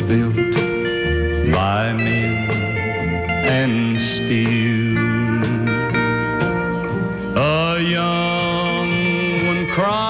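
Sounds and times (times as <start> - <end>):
country band music: 0.0 - 10.0.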